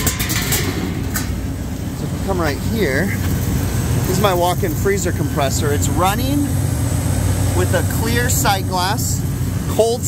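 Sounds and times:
refrigeration units humming: 0.0 - 10.0.

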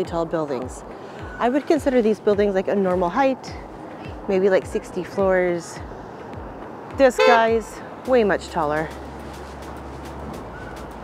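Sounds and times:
passing traffic: 0.0 - 11.0.

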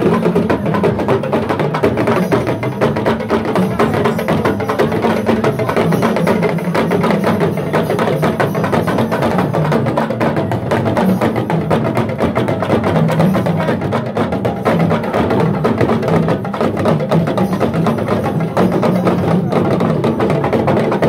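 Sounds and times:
crowd voices: 0.0 - 21.0
hand drums and percussion: 0.0 - 21.0.

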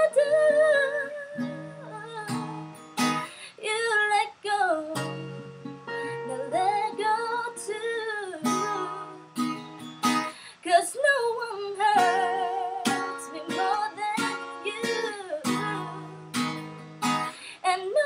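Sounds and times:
woman singing: 0.0 - 2.6, 3.5 - 5.4, 6.0 - 9.4, 10.5 - 16.5, 17.5 - 18.0
acoustic guitar strumming: 0.0 - 3.4, 4.9 - 10.4, 11.8 - 17.5.

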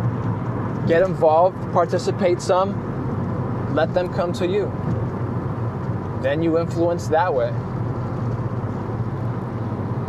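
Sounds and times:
engine and tyre hum: 0.0 - 10.0.

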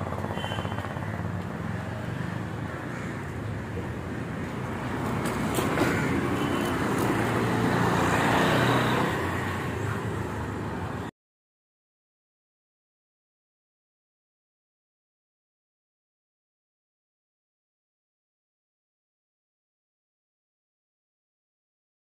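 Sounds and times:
street traffic: 0.0 - 11.1
vehicle passing close by: 4.7 - 10.1.

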